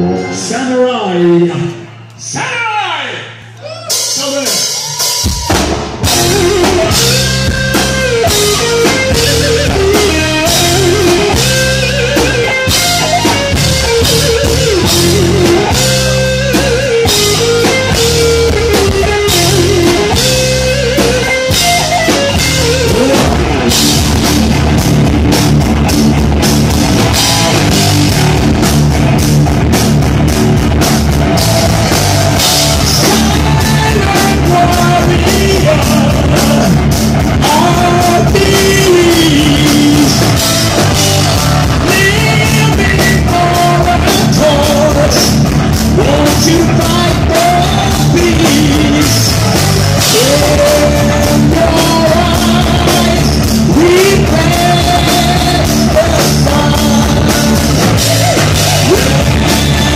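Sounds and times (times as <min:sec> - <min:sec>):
rock band playing: 0:00.0 - 0:59.9
electric guitar melody: 0:05.9 - 0:59.9.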